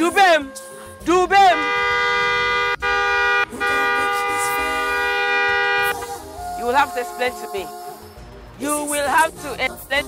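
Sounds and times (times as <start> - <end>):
car horn honking: 0.0 - 8.0.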